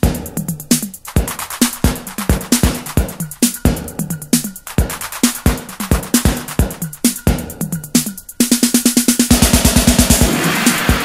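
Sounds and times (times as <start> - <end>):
electro hip-hop track: 0.0 - 11.0
fast drum machine roll: 0.0 - 11.0.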